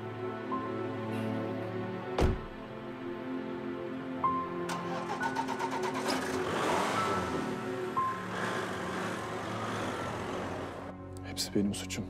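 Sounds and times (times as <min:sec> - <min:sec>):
soft background music: 0:00.0 - 0:12.0
car driving on cobbled street: 0:04.7 - 0:11.1.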